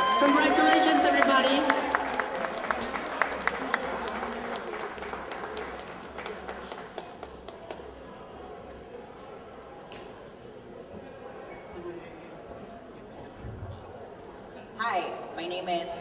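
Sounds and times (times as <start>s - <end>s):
whoops and cheers: 0.0s - 2.4s
audience applauding: 0.0s - 7.8s.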